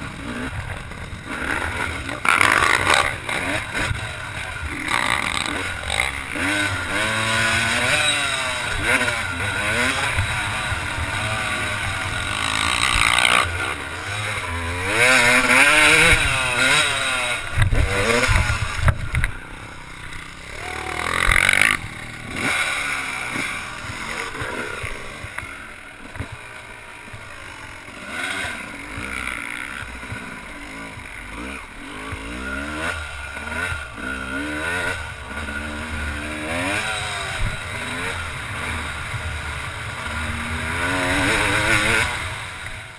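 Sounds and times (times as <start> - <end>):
motocross engine revving: 0.0 - 42.9.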